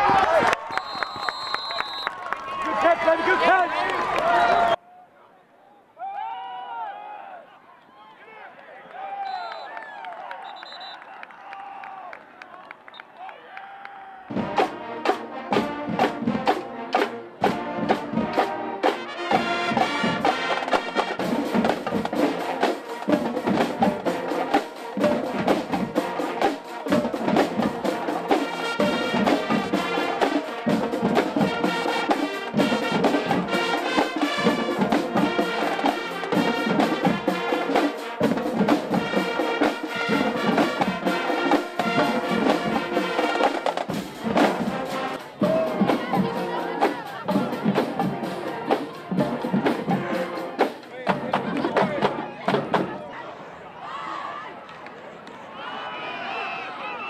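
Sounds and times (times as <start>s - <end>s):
marching band brass: 0.0s - 4.8s, 9.2s - 11.2s, 14.2s - 53.2s
snare and bass drums: 14.3s - 53.0s.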